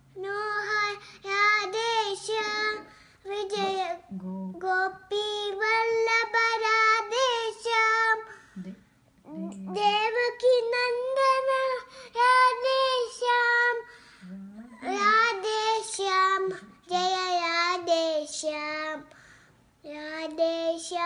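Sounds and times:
girl singing unaccompanied: 0:00.0 - 0:08.5, 0:09.3 - 0:19.2, 0:19.8 - 0:21.0.

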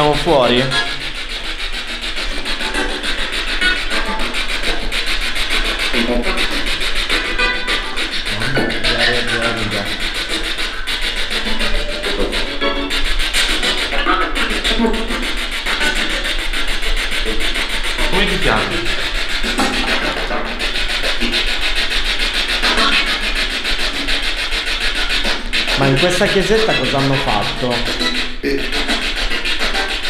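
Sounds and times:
radio static sweeping: 0:00.0 - 0:01.0, 0:08.1 - 0:12.4, 0:18.0 - 0:19.9, 0:25.6 - 0:28.6
snatches of voices: 0:00.0 - 0:01.0, 0:05.8 - 0:07.3, 0:08.0 - 0:12.6, 0:13.4 - 0:16.4, 0:17.0 - 0:21.5, 0:25.3 - 0:30.0
snatches of music: 0:00.0 - 0:30.0.

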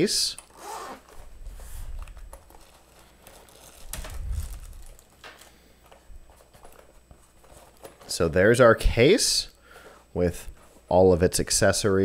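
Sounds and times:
plastic wrapping crinkling: 0:00.4 - 0:05.6.

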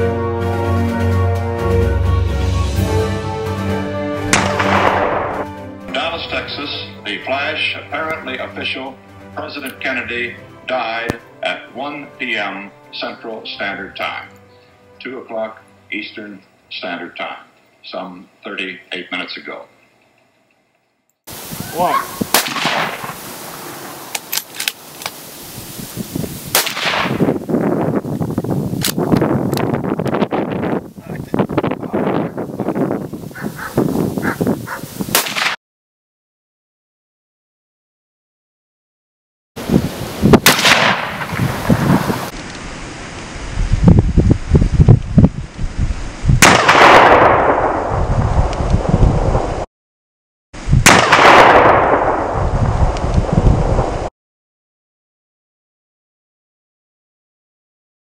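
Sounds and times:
rifle shots echoing: 0:04.3 - 0:05.5, 0:22.3 - 0:23.8, 0:26.5 - 0:27.2, 0:35.1 - 0:35.6, 0:40.4 - 0:41.6, 0:46.4 - 0:47.9, 0:50.9 - 0:52.4
rifle bolt clicks: 0:24.1 - 0:25.2, 0:28.8 - 0:29.6.

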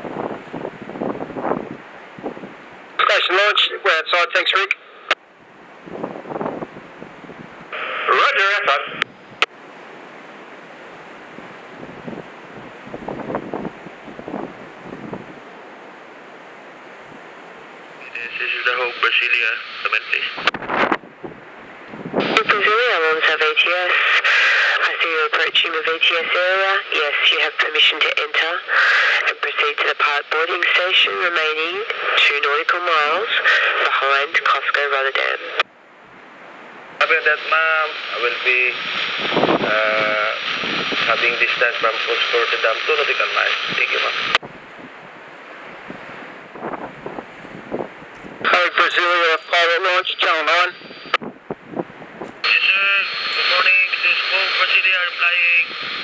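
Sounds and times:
wind buffeting microphone: 0:00.0 - 0:02.9, 0:05.4 - 0:07.8, 0:10.4 - 0:15.7, 0:20.4 - 0:22.6, 0:38.7 - 0:41.7, 0:43.6 - 0:48.5, 0:50.7 - 0:52.5, 0:55.6 - 0:56.0
radio hiss: 0:03.0 - 0:05.2, 0:07.7 - 0:09.1, 0:18.0 - 0:21.0, 0:22.2 - 0:35.6, 0:37.0 - 0:44.4, 0:48.4 - 0:51.2, 0:52.4 - 0:56.0
voices over radio speaker: 0:03.0 - 0:05.2, 0:07.8 - 0:09.1, 0:18.0 - 0:20.9, 0:22.2 - 0:35.7, 0:37.0 - 0:44.4, 0:48.4 - 0:51.2, 0:52.4 - 0:56.0.

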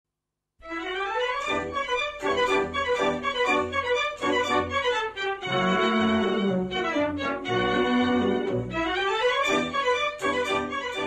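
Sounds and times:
orchestral music with violins: 0:00.6 - 0:11.0.

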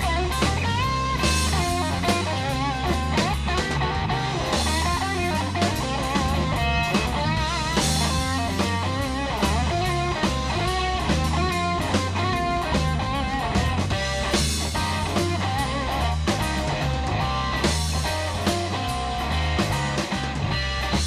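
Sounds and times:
bass guitar: 0:00.0 - 0:21.0
drum kit: 0:00.0 - 0:21.0
electric guitar lead: 0:00.0 - 0:21.0.

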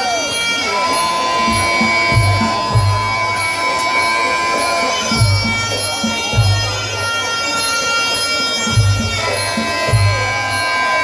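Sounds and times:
crowd murmuring: 0:00.0 - 0:11.0
shrill double-reed pipe: 0:00.0 - 0:11.0
low drum beats: 0:01.0 - 0:07.2, 0:08.6 - 0:10.7.

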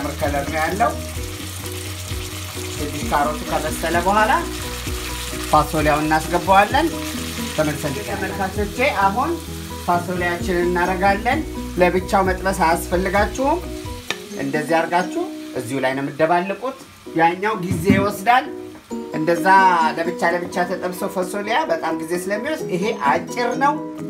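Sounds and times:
vegetables sizzling in frying pan: 0:00.0 - 0:20.8
melodic background music: 0:00.0 - 0:24.0.

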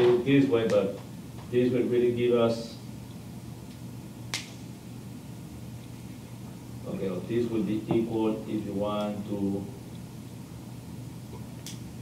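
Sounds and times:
low hum of room noise: 0:00.0 - 0:12.0.

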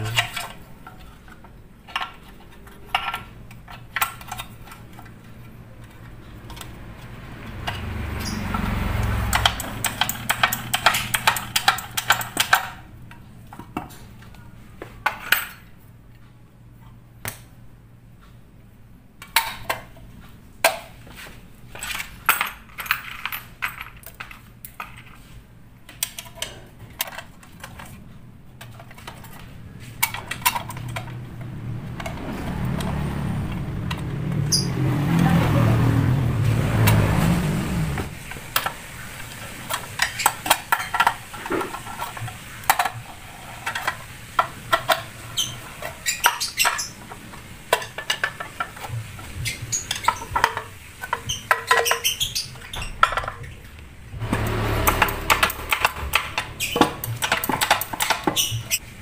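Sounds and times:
metal parts clicking and clinking: 0:00.0 - 0:06.8, 0:09.2 - 0:13.2, 0:21.7 - 0:25.3, 0:54.8 - 0:58.8
low engine rumble: 0:04.5 - 0:15.0, 0:28.1 - 0:39.8, 0:52.8 - 0:59.0.

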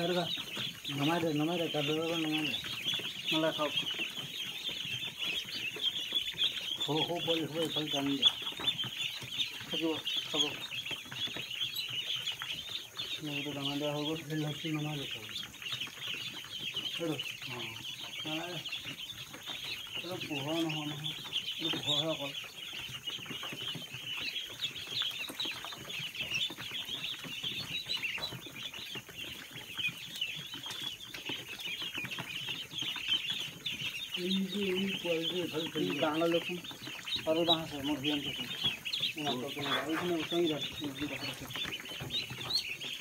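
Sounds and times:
ducklings peeping: 0:00.0 - 0:43.0.

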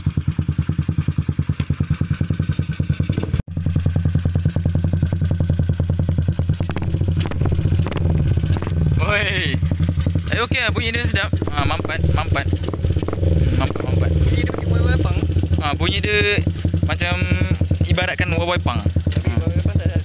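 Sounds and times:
motorcycle engine idling: 0:00.0 - 0:20.0.

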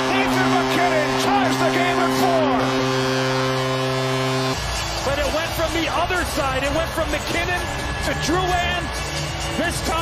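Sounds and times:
goal horn low note: 0:00.0 - 0:04.6.

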